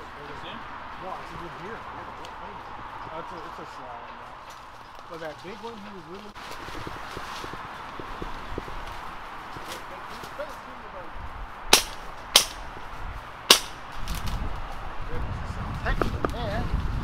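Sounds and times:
sharp loud cracks: 11.7 - 12.8, 13.5 - 14.4.

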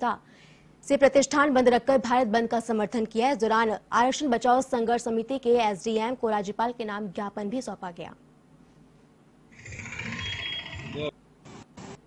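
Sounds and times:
street traffic: 9.5 - 12.0.

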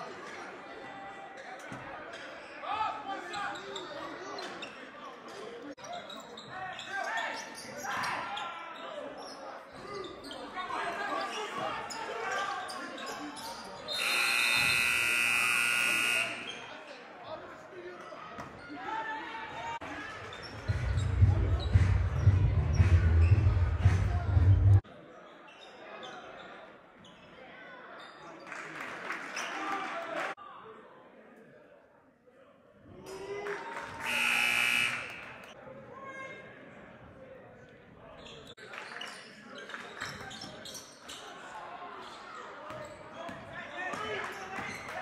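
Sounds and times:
crowd chatter: 0.0 - 45.0
scoreboard buzzer: 14.0 - 16.6, 34.0 - 35.5.

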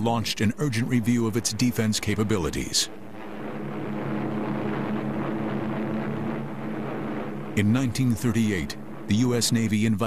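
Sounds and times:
propeller aircraft engine drone: 0.0 - 10.0.

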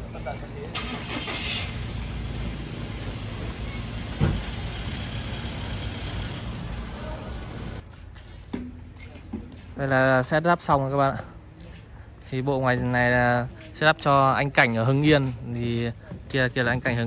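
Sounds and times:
vehicle engine idling: 0.0 - 7.8
thump: 4.1 - 4.6.

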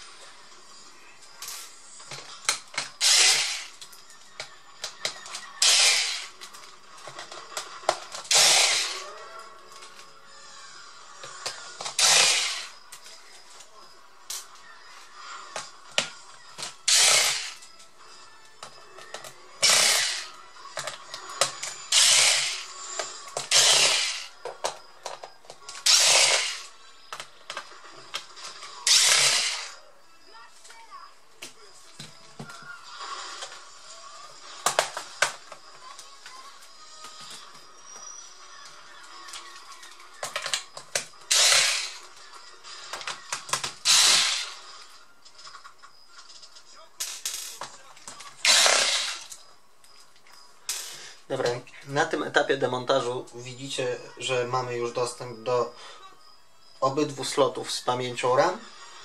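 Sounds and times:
electric screwdriver whirring: 3.0 - 3.8, 5.6 - 6.4, 8.3 - 9.0, 11.9 - 12.7, 16.9 - 17.6, 19.6 - 20.3, 21.9 - 22.7, 23.5 - 24.3, 25.8 - 26.7, 28.9 - 29.8, 41.3 - 42.0, 43.8 - 44.6, 48.4 - 49.3.

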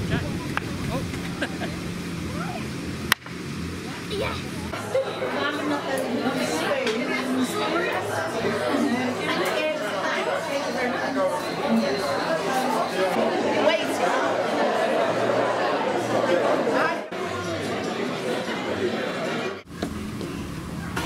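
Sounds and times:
crowd chatter in a hall: 0.0 - 21.0.

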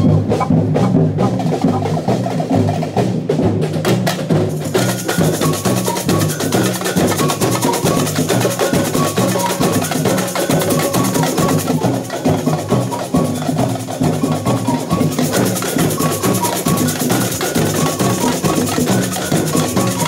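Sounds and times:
bass drums: 0.0 - 20.0
handheld percussion: 0.0 - 20.0
snare drums: 0.0 - 20.0.

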